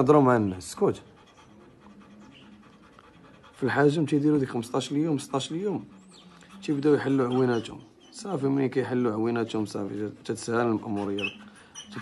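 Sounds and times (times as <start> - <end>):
dog panting faintly: 0.0 - 12.0.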